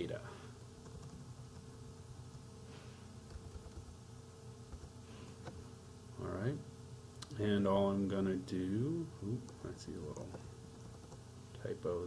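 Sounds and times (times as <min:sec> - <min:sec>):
faint electrical hum and buzz: 0:00.0 - 0:12.0.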